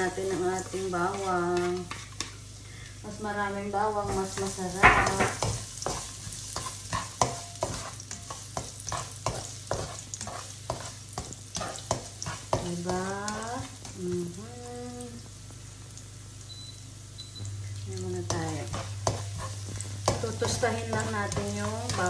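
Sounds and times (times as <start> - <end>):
garlic sizzling in oil: 0.0 - 22.0
spatula scraping and tapping pan: 0.2 - 2.4, 4.0 - 14.3, 18.2 - 22.0.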